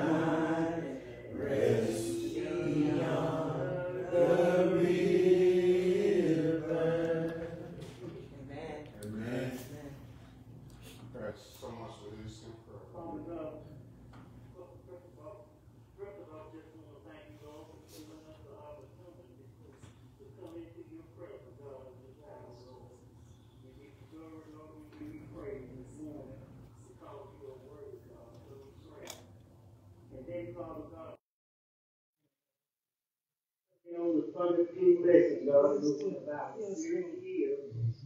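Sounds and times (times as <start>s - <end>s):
congregation singing a hymn: 0.0s - 8.2s.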